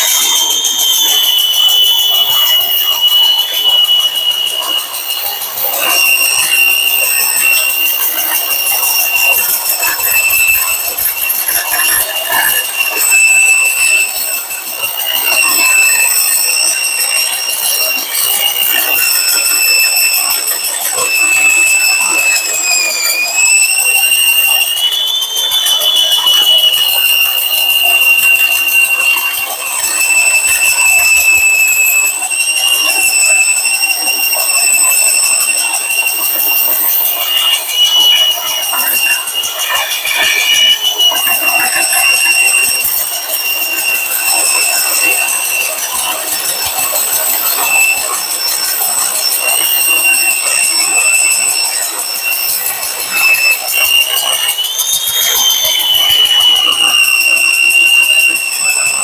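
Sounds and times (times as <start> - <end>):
power tool motor whine: 0.0 - 59.0.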